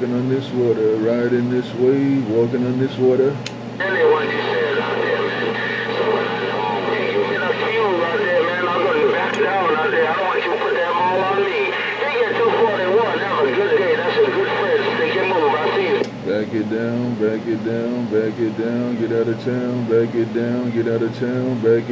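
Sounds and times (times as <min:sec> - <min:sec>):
steady low hum: 0:00.0 - 0:21.9
voices over a radio speaker: 0:00.0 - 0:21.9.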